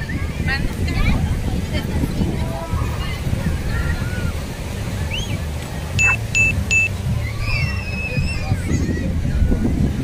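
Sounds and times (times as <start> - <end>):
surf rumble: 0.0 - 10.0
wind on microphone: 0.0 - 10.0
short electronic beeps: 6.0 - 7.0.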